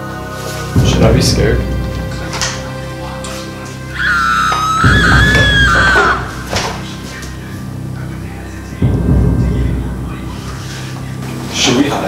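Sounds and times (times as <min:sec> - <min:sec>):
background music: 0:00.0 - 0:12.0
high-pitched scream: 0:03.9 - 0:06.9.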